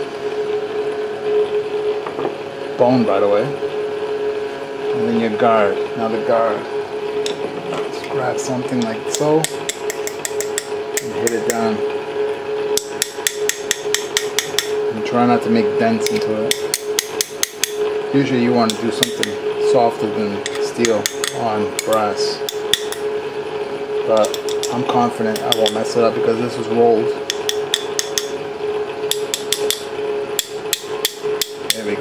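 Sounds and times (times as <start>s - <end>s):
steady hum: 0.0s - 32.0s
screwdriver tapping brass guard: 12.8s - 14.7s, 24.2s - 25.8s, 27.2s - 28.4s, 29.1s - 29.8s
metal tool tapping brass guard: 24.2s - 25.8s, 29.1s - 29.8s.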